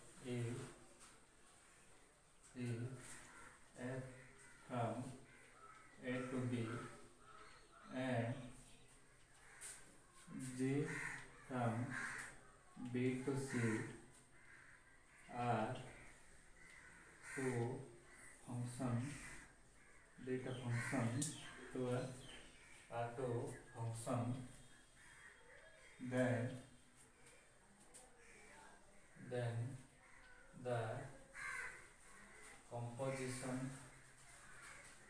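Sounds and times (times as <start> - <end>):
man speaking: 0.1 - 0.8, 2.5 - 3.1, 3.7 - 5.3, 6.0 - 7.0, 7.8 - 8.6, 10.3 - 12.0, 12.8 - 14.0, 15.3 - 16.0, 17.4 - 19.2, 20.2 - 22.2, 22.9 - 24.6, 26.0 - 26.7, 29.2 - 29.8, 30.6 - 31.2, 32.7 - 33.9
crows cawing: 0.4 - 35.0.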